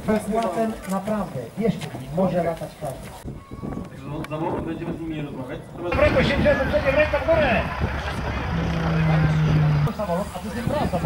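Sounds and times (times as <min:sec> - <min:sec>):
people talking: 0:03.8 - 0:11.0
biplane engine running: 0:05.9 - 0:10.9.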